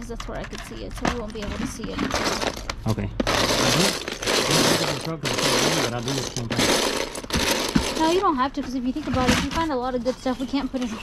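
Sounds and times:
plastic bricks clattering: 0.1s - 8.3s.

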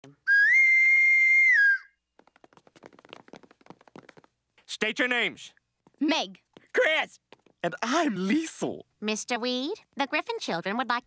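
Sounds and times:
whistle blown: 0.2s - 2.0s.

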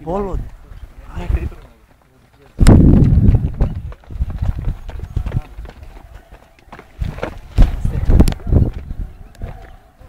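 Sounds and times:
footsteps climbing steps: 1.6s - 9.8s
wind rumble on microphone: 2.6s - 6.2s, 6.9s - 10.0s.

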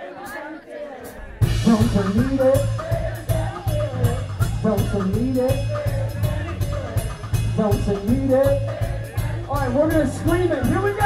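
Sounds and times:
person singing: 0.0s - 11.0s
blues-rock band playing: 1.4s - 11.0s.

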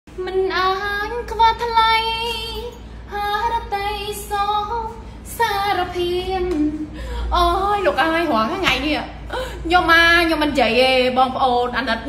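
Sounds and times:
high voice singing unaccompanied: 0.1s - 8.8s.

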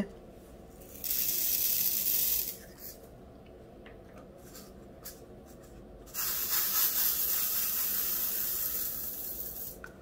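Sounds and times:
resin beads poured into a tray: 0.9s - 2.6s, 6.2s - 9.8s.

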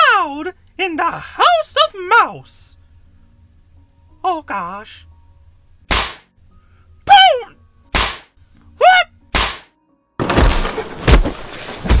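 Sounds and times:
cartoon punch hits: 5.9s - 6.3s, 7.9s - 8.3s, 9.3s - 11.3s
short high-pitched yells: 7.1s - 7.6s, 8.8s - 9.1s
noisy crash: 10.2s - 12.0s.

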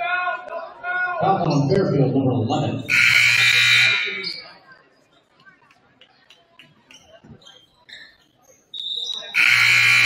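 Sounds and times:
scoreboard horn blast: 2.9s - 4.1s, 9.4s - 10.0s.

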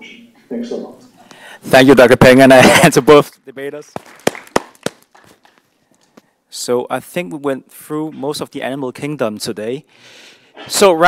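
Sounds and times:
small audience applause: 4.0s - 5.6s.

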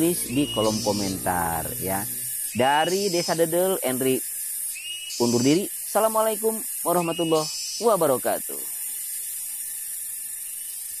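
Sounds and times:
high-pitched hiss: 0.0s - 11.0s.

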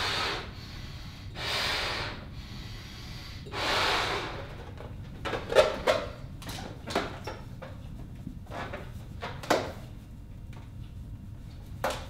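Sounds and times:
breaths into balloon: 0.0s - 4.6s.

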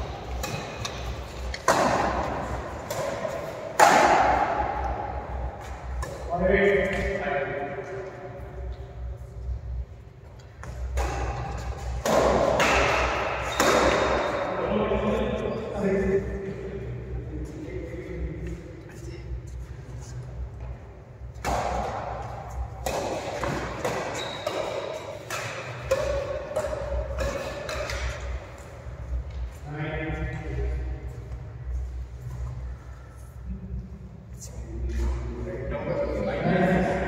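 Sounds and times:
racket strikes: 0.2s - 7.2s, 10.6s - 14.5s, 21.3s - 28.7s.

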